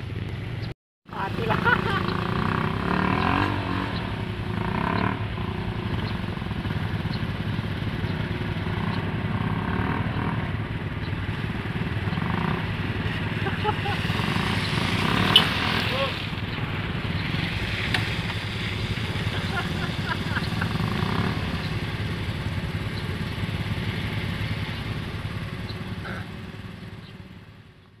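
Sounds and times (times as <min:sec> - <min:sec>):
motorcycle engine revving hard: 0:01.1 - 0:27.6.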